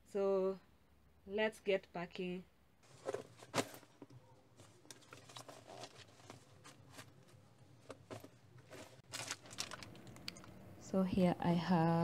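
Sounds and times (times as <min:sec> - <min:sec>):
rustling and crinkling of packing: 0:02.8 - 0:10.5.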